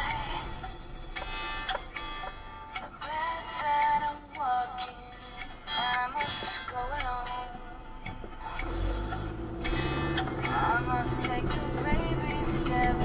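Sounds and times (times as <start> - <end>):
song with sung vocals: 0.0 - 13.0.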